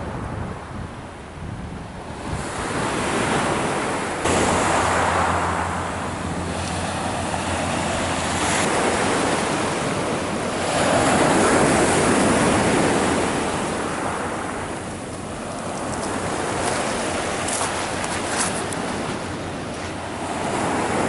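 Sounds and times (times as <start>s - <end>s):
surf washing onto pebble beach: 2.2s - 21.0s.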